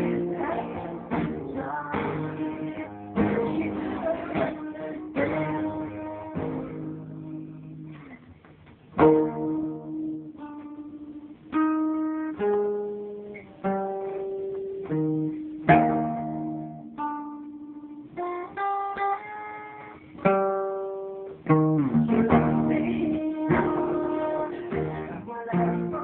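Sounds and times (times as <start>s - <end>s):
solo acoustic guitar: 0.0s - 26.0s.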